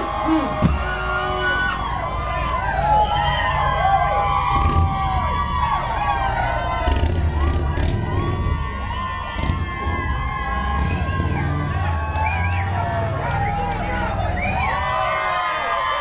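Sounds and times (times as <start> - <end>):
brass band playing low notes: 0.0 - 2.1
crowd cheering and screaming: 0.0 - 16.0.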